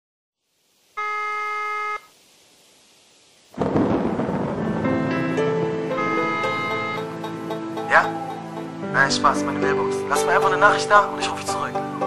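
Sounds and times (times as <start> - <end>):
faint hiss: 0.4 - 12.0
telephone ringback tone: 1.0 - 2.1, 6.0 - 7.2.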